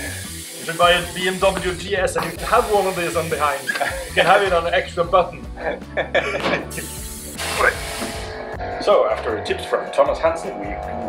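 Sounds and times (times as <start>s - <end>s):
steady hiss: 0.0s - 4.5s
people laughing: 3.6s - 4.5s, 5.6s - 7.0s.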